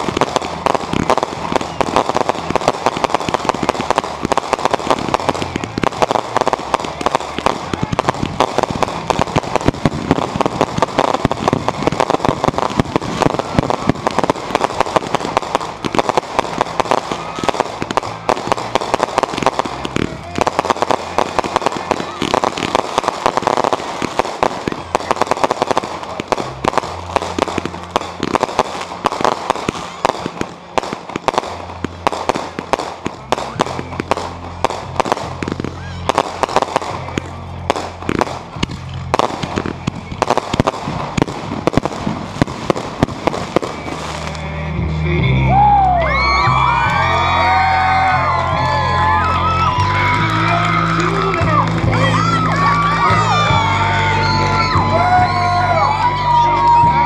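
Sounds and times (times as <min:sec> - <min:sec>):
fireworks popping and banging: 0:00.0 - 0:44.7, 0:46.2 - 0:57.0
music playing: 0:00.0 - 0:57.0
people whooping and cheering: 0:00.1 - 0:31.4, 0:35.0 - 0:38.2, 0:45.0 - 0:57.0.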